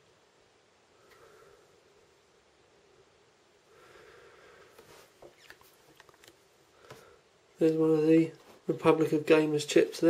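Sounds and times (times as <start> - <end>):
short faint squeak: 5.2 - 5.8.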